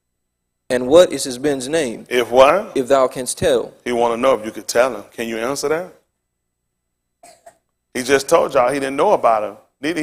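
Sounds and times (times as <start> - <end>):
person coughing: 7.2 - 7.7.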